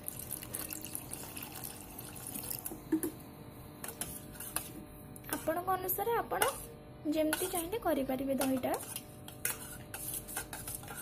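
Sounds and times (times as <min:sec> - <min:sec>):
water pouring into steel bowl: 0:00.0 - 0:02.7.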